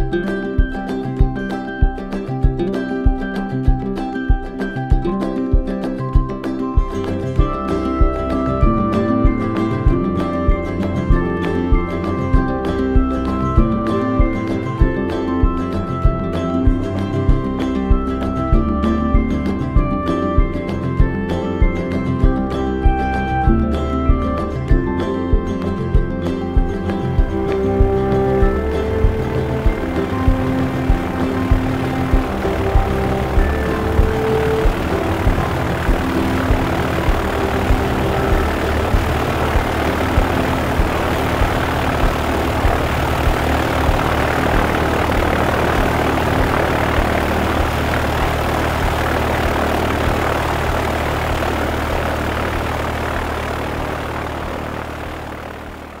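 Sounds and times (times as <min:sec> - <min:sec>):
music with steady beat: 0:00.0 - 0:55.0
aircraft engine drone: 0:07.0 - 0:56.0.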